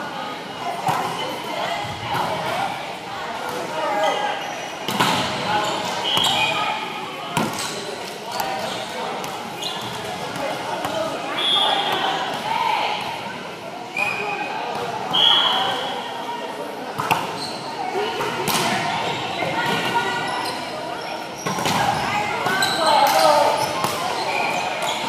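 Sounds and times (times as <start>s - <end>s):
background chatter: 0.0s - 25.0s
sneaker squeaks on hardwood: 17.2s - 17.7s, 21.4s - 25.0s.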